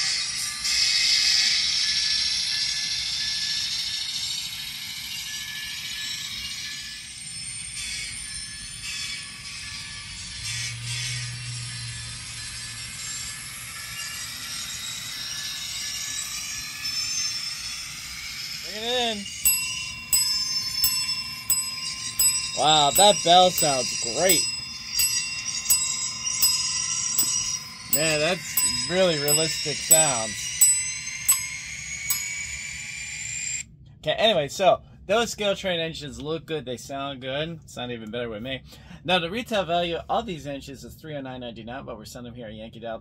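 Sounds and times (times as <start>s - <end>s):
model locomotive bell ringing: 2.3s - 11.0s, 12.1s - 33.6s
diesel engine sound from small speaker: 9.7s - 14.0s
locomotive bell ringing: 18.6s - 33.6s.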